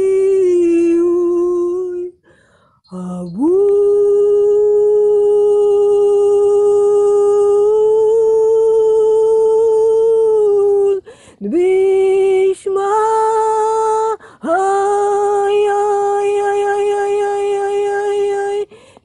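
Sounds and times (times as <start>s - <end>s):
person humming held notes: 2.9s - 18.7s.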